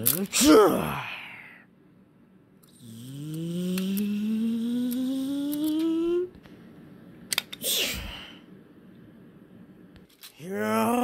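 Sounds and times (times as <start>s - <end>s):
person humming rising tone: 2.8s - 6.4s.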